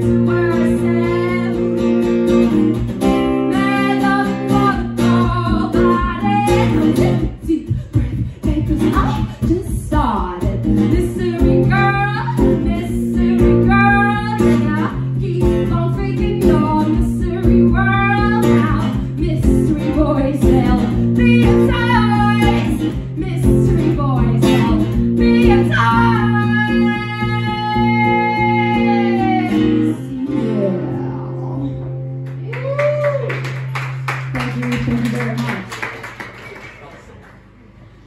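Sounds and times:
woman singing: 0.0s - 2.1s, 3.2s - 31.6s
strummed acoustic guitar: 0.0s - 32.4s.

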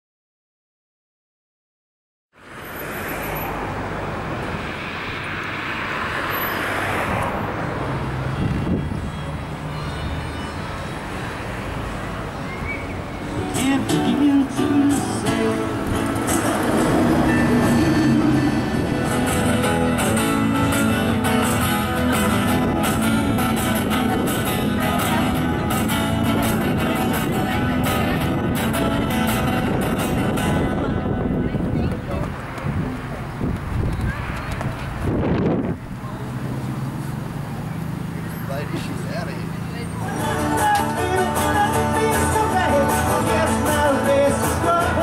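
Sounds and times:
music: 13.3s - 31.2s, 40.0s - 45.0s.

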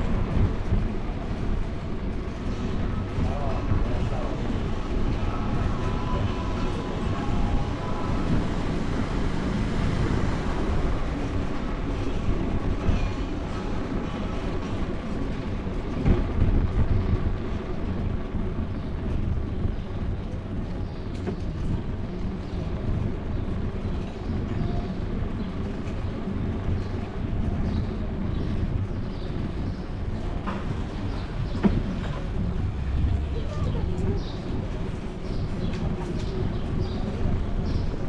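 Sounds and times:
bicycle riding vibration: 0.0s - 38.0s
wind rumble: 0.0s - 38.0s.

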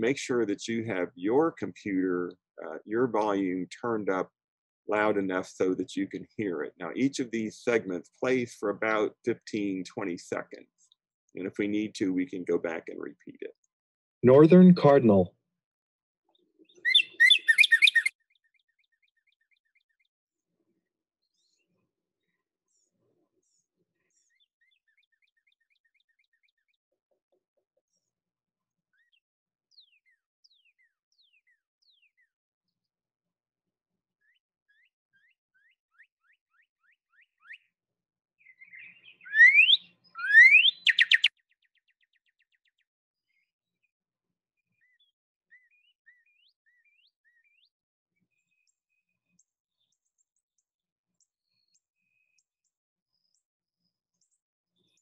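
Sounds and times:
recorded cardinal song: 0.7s - 15.3s, 16.3s - 33.1s, 34.0s - 55.0s.

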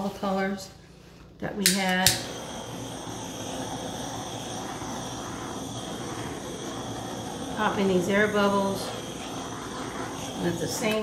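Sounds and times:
butane torch flame hissing: 1.6s - 11.0s.

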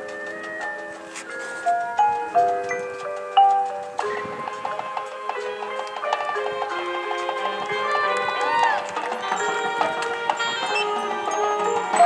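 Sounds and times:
mallet percussion notes: 0.0s - 12.0s
marching band playing: 0.0s - 12.0s.

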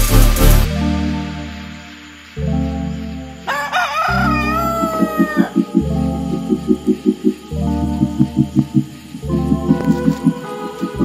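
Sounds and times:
electronic music with deep bass: 0.0s - 11.0s
rooster crowing: 3.5s - 5.8s.

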